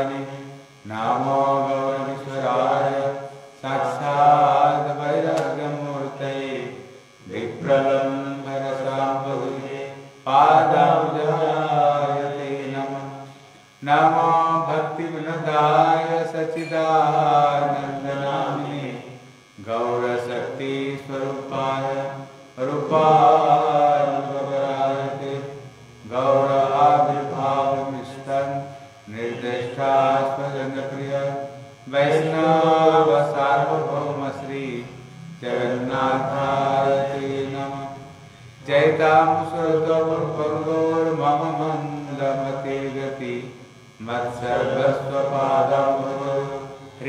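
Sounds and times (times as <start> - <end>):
man chanting prayers: 0.0 - 47.0.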